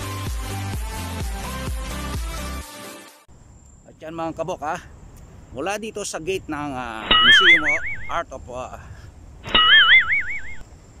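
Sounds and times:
cartoon boing warbling tone: 0:07.1 - 0:08.1, 0:09.5 - 0:10.6.

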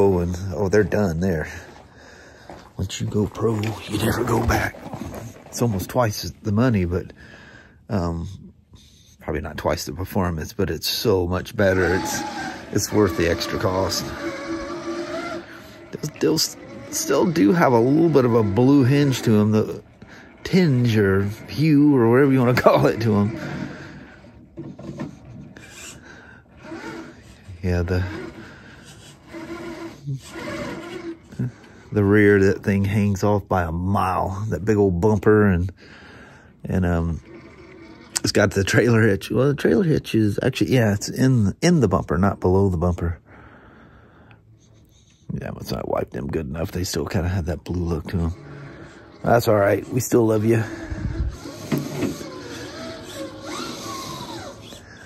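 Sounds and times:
electric drivetrain whirring: 0:00.0 - 0:06.2, 0:10.9 - 0:33.2, 0:36.7 - 0:39.0, 0:46.8 - 0:55.0
tires scraping on bricks: 0:00.0 - 0:07.0, 0:11.0 - 0:35.4, 0:46.7 - 0:55.0
electric motor and gears whining: 0:00.0 - 0:07.2, 0:10.9 - 0:35.6, 0:36.7 - 0:39.6, 0:46.6 - 0:55.0.

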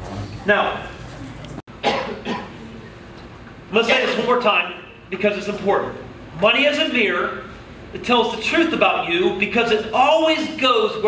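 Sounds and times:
man coughing: 0:01.8 - 0:02.6, 0:03.8 - 0:04.4.

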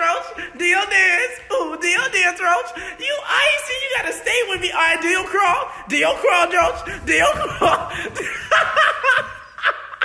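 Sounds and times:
person laughing: 0:07.5 - 0:10.0.

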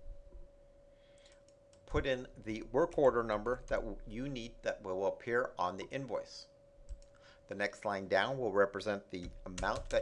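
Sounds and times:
faint electrical hum: 0:00.0 - 0:10.0
man speaking: 0:01.9 - 0:06.5, 0:07.5 - 0:10.0
computer mouse clicks: 0:06.9 - 0:07.2.

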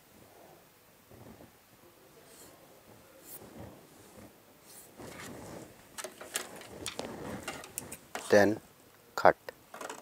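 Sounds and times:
paper rustling: 0:03.2 - 0:08.5
light clicks and knocks: 0:09.7 - 0:10.0.

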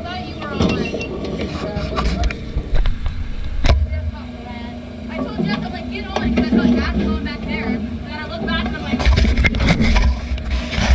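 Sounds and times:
indistinct voices: 0:00.0 - 0:09.9
race car engine idling: 0:00.0 - 0:10.9.

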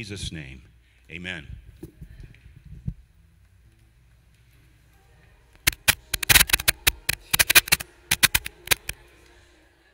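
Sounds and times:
loud sharp clicks and knocks: 0:05.6 - 0:09.0.

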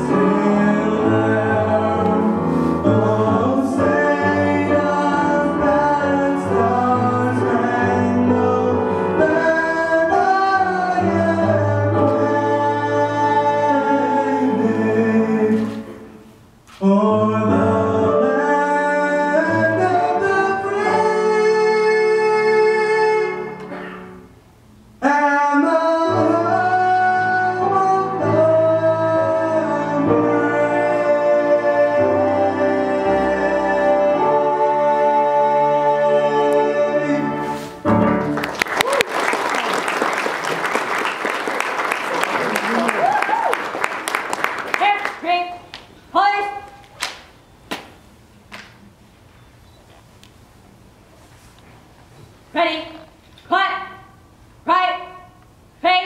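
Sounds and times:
singers holding long notes: 0:00.0 - 0:24.3, 0:25.0 - 0:44.7.

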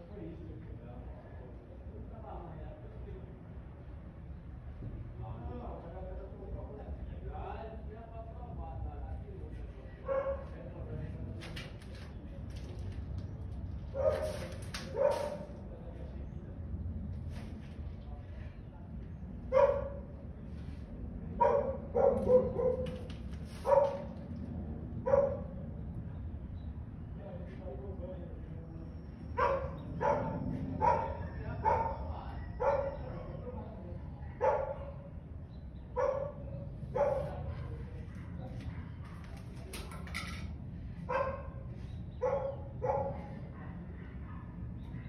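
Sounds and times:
dog barking: 0:10.1 - 0:10.5, 0:13.9 - 0:15.5, 0:19.5 - 0:20.1, 0:21.4 - 0:24.1, 0:25.0 - 0:25.5, 0:29.4 - 0:33.4, 0:34.3 - 0:35.2, 0:35.9 - 0:39.2, 0:41.1 - 0:41.6, 0:42.2 - 0:45.0
steady low hum: 0:14.6 - 0:45.0.

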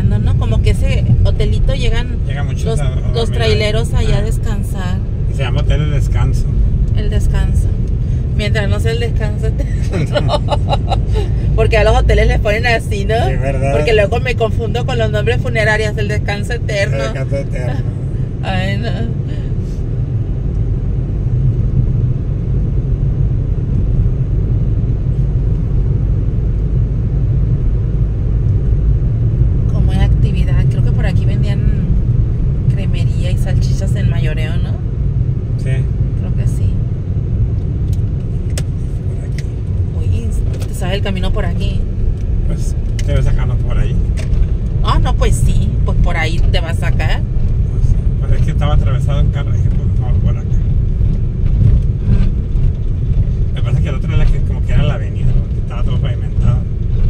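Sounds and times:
car engine and road rumble: 0:00.0 - 0:57.0.

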